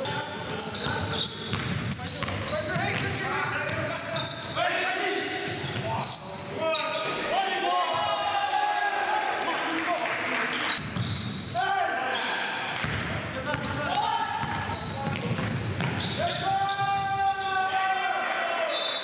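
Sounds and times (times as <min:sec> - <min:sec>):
sneakers squeaking on hardwood: 0:00.0 - 0:07.2, 0:10.7 - 0:11.6, 0:12.2 - 0:17.3
basketball bouncing: 0:01.5 - 0:03.8, 0:12.8 - 0:13.8, 0:14.4 - 0:16.1
players shouting: 0:16.0 - 0:19.0.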